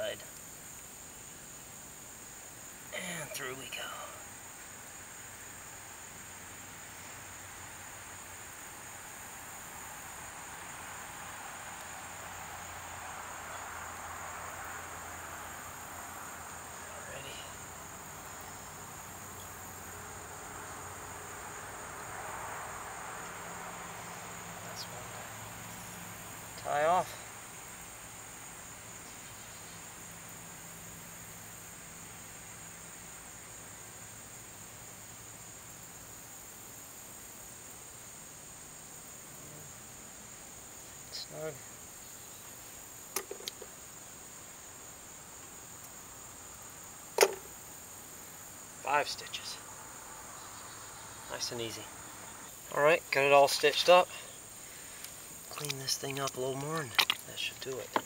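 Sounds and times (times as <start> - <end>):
high-pitched insect chorus: 0.0 - 58.0
short pitched insect call: 0.0 - 58.0.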